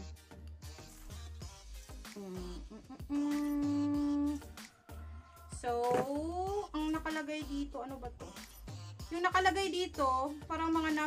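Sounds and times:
background music with bass: 0.0 - 11.0
woman humming: 2.0 - 4.5.

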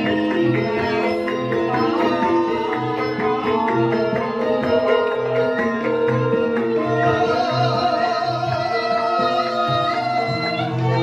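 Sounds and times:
metallophones ringing: 0.0 - 11.0.

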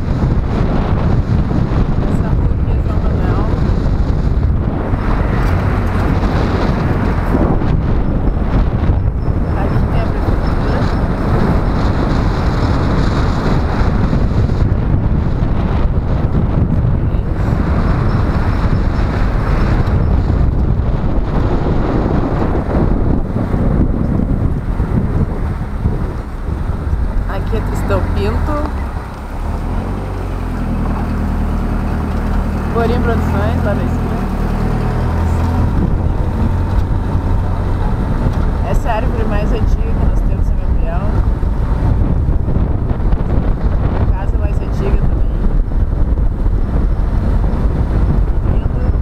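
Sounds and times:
car road and engine noise: 0.0 - 49.0
wind rumble on microphone: 0.0 - 49.0.

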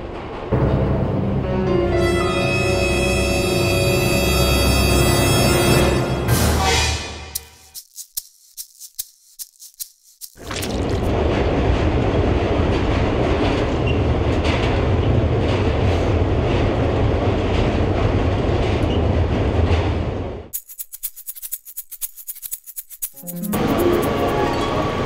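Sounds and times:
subway train rumble and rattle: 0.0 - 6.7, 11.1 - 20.5, 23.6 - 25.0
light shaker-like ticks: 7.3 - 10.6, 20.5 - 24.5.

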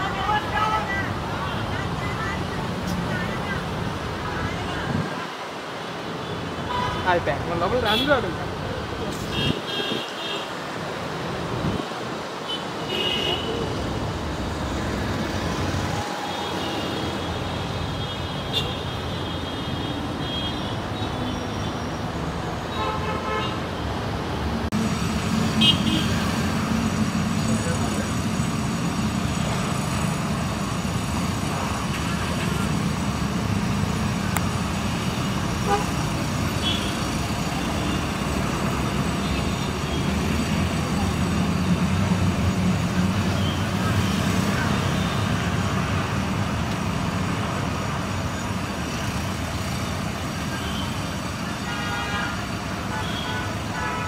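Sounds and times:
traffic noise: 0.0 - 54.0
car horns tooting: 35.6 - 36.0.

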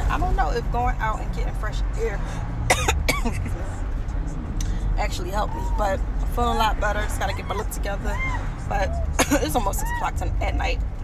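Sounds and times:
car cabin rumble: 0.0 - 11.0
woman coughing: 2.7 - 3.6, 9.2 - 9.7.

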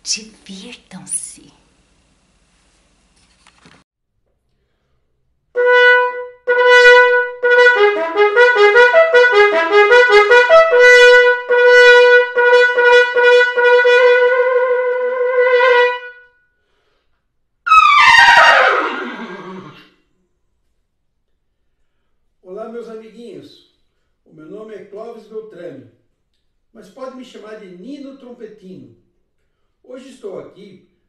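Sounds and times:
solo trumpet: 5.6 - 16.4, 17.7 - 19.8.

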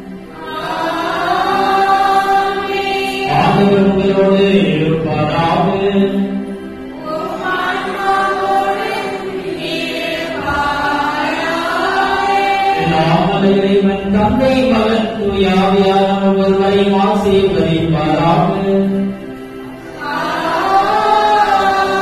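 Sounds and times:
steady held accompanying tone: 0.0 - 22.0
sung liturgical chant: 0.0 - 22.0.

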